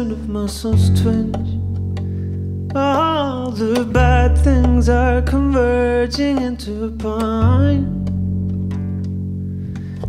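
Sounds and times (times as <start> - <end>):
acoustic guitar: 0.0 - 10.0
plucked double bass: 0.0 - 10.0.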